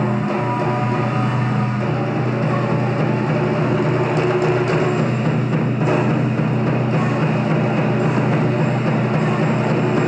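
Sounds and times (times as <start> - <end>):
taiko drums played fast: 0.0 - 10.0.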